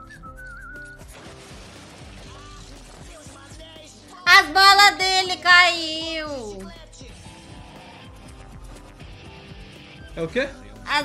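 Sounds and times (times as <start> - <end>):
wavering whistle: 0.0 - 1.0
cartoon background music: 0.0 - 11.0.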